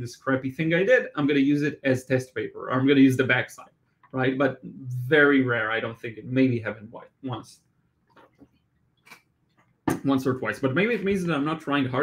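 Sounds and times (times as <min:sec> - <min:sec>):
man speaking: 0:00.0 - 0:07.6, 0:09.9 - 0:12.0.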